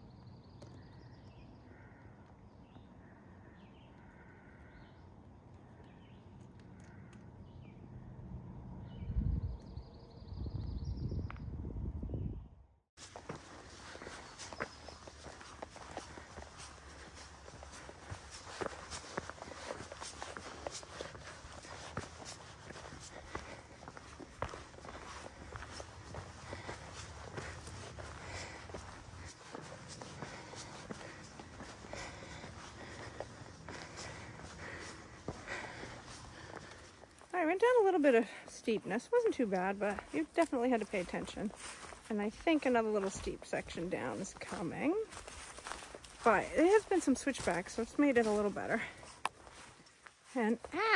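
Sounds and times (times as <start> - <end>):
wind buffeting microphone: 8.0 - 13.3
footsteps on rocky trail: 13.0 - 50.9.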